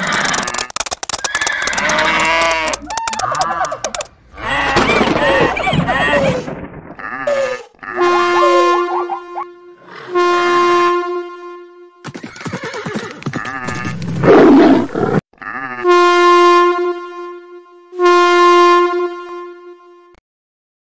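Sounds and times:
gliding animal cries: 0:00.0 - 0:10.0
loud animal cry: 0:01.3 - 0:10.0
locomotive horn blasts: 0:07.3 - 0:12.1, 0:15.8 - 0:20.2.

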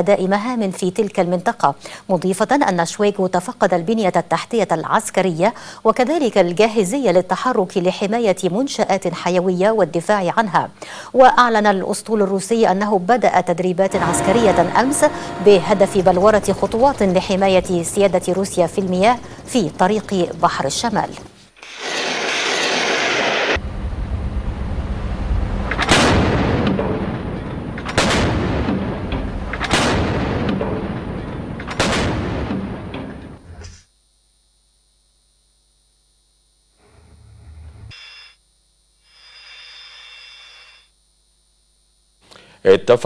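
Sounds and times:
continuous rumbling: 0:13.8 - 0:21.3, 0:23.6 - 0:31.7
deck gun firing heavy shots: 0:27.8 - 0:28.8, 0:29.6 - 0:30.7, 0:31.7 - 0:32.8.

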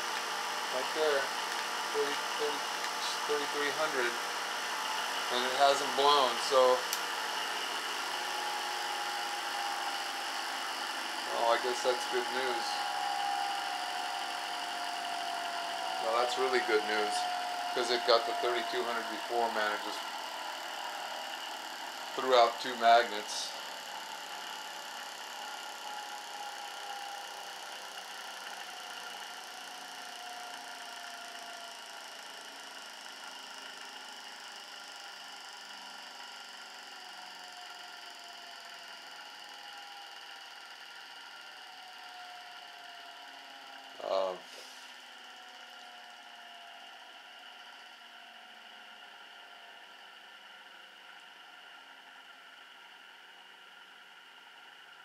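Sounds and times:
magnetic motor high-pitched whine: 0:00.0 - 0:55.0.

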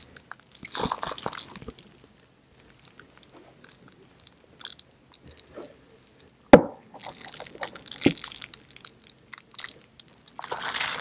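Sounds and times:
crunching chew: 0:00.0 - 0:06.4, 0:07.0 - 0:11.0.

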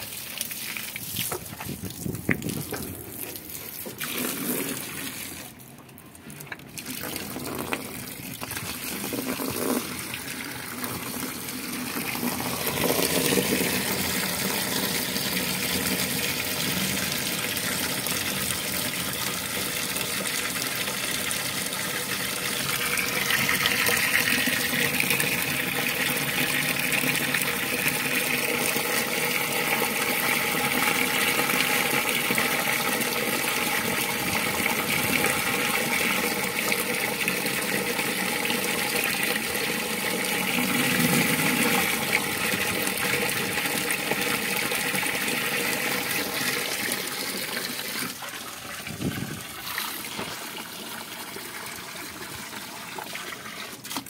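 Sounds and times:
water pouring into a tub: 0:00.0 - 0:54.0.

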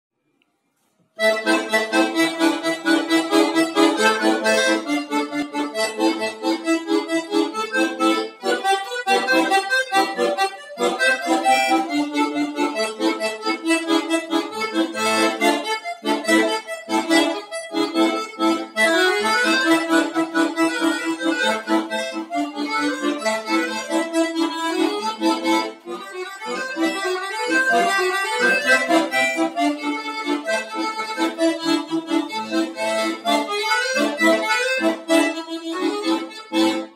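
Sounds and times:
button accordion playing a polka: 0:01.2 - 0:36.9.

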